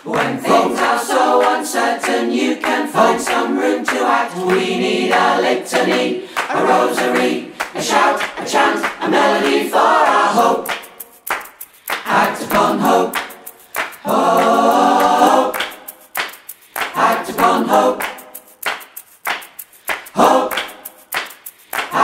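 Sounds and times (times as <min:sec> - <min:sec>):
unaccompanied choir singing: 0:00.0 - 0:11.0, 0:11.9 - 0:16.2, 0:16.8 - 0:18.6, 0:20.0 - 0:21.1, 0:21.8 - 0:22.0.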